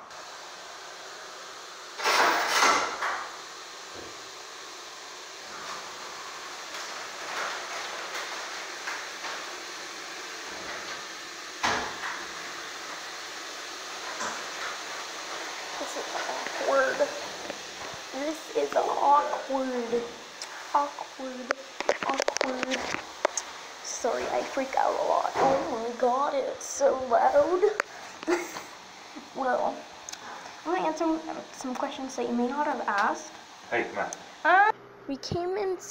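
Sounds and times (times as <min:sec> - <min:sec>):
washing machine rushing: 0:00.0 - 0:34.7
washing machine clatter: 0:01.8 - 0:33.2.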